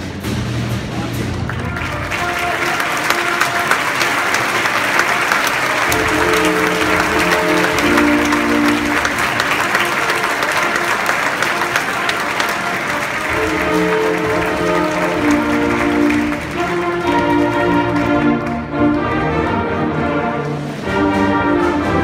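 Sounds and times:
concert band playing: 0.0 - 22.0
audience applauding: 1.3 - 19.2.

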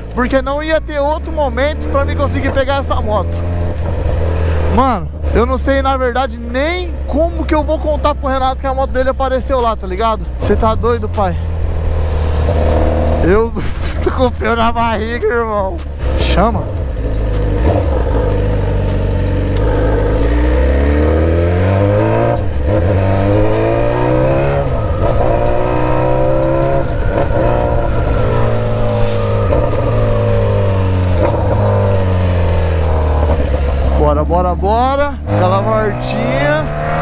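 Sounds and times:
motorcycle engine accelerating: 0.0 - 37.0.

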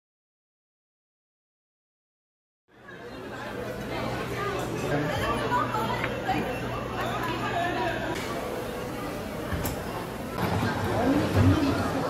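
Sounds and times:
many voices chatting: 2.7 - 12.0.

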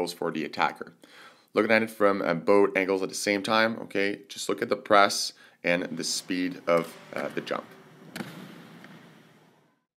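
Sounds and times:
faint room noise: 0.0 - 9.9.

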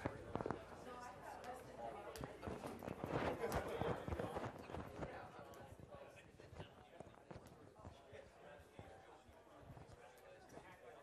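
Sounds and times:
indistinct chatter: 0.0 - 11.0.

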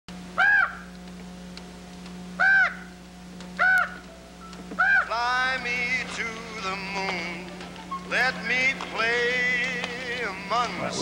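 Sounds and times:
steady low hum: 0.1 - 11.0
crow cawing: 0.4 - 1.0, 2.4 - 3.0, 3.6 - 4.1, 4.8 - 5.2.

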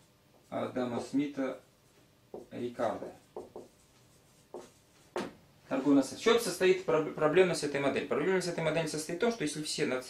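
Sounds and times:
marker writing on whiteboard: 2.3 - 5.4.

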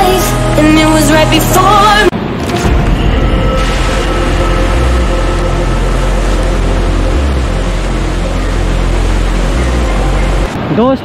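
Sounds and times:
waterfall pouring over rocks: 3.6 - 10.6.

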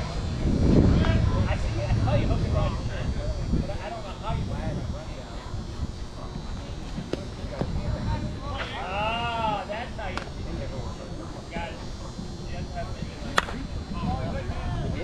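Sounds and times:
scattered talk: 0.0 - 15.0
bat cracking a ball: 13.3 - 13.6.

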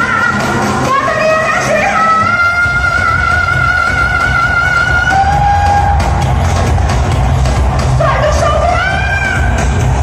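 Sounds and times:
live pop music: 0.0 - 10.0
heavy bass beat: 2.5 - 10.0.

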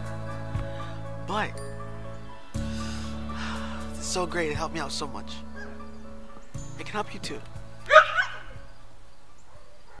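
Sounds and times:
dog barking: 7.9 - 8.6, 9.4 - 10.0.

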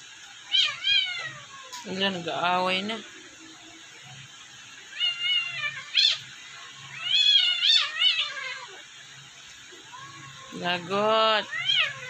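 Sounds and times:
kittens mewing: 4.9 - 8.9, 11.4 - 12.0.

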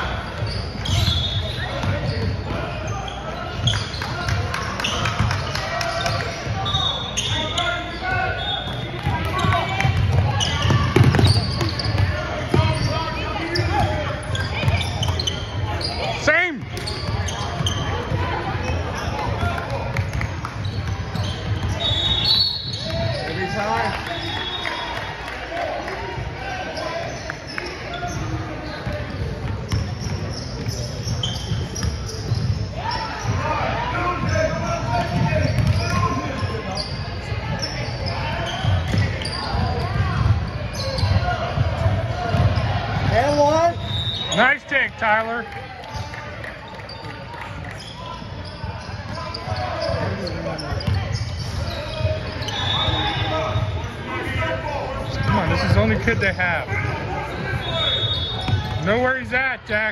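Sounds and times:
voices echoing in a hall: 0.0 - 59.9.

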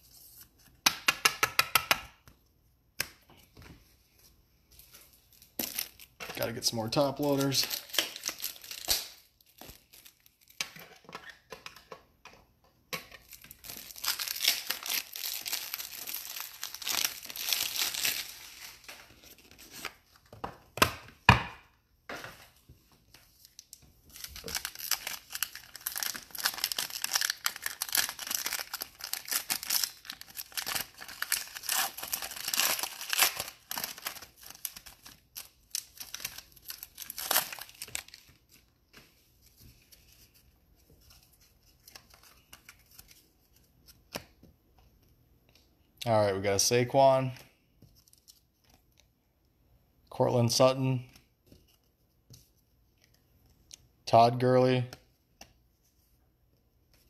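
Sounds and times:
plastic wrappers crinkling and tearing: 5.2 - 11.0, 13.2 - 20.1, 23.3 - 38.7.

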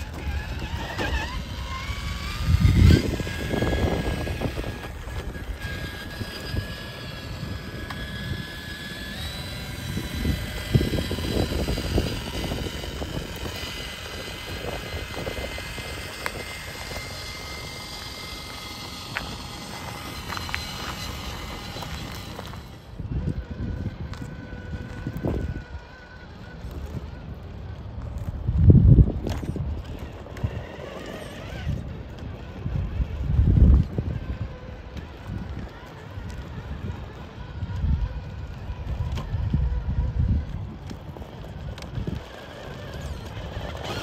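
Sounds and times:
electric motor whine: 0.0 - 44.0.

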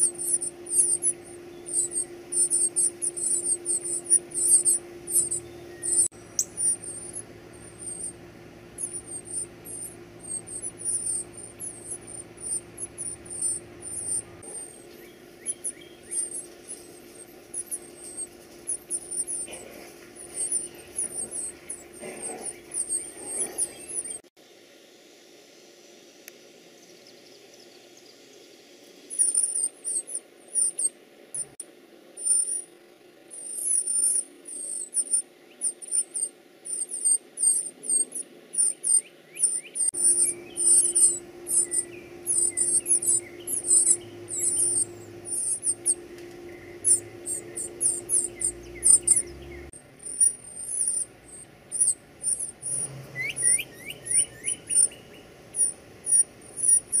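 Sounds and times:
nestlings cheeping: 0.0 - 24.3, 29.0 - 31.6, 32.2 - 57.0
steady low hum: 0.0 - 57.0.

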